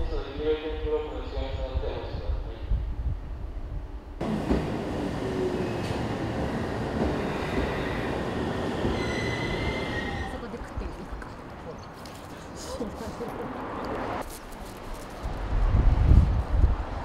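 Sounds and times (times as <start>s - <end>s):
electric train rumbling: 3.2s - 10.9s
high metallic squeal: 8.9s - 10.4s.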